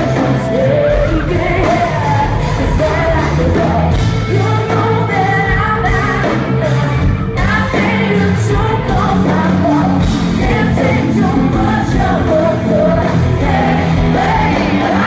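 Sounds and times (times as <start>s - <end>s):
live hard rock band: 0.0s - 15.0s
woman singing: 0.0s - 15.0s.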